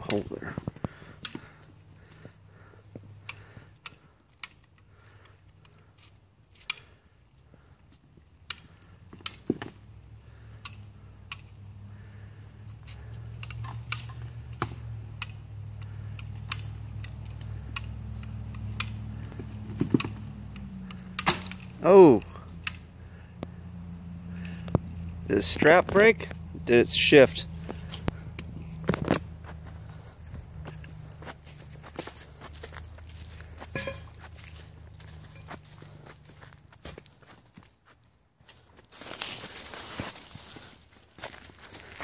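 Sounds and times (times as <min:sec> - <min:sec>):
low steady hum: 0:00.0 - 0:42.0.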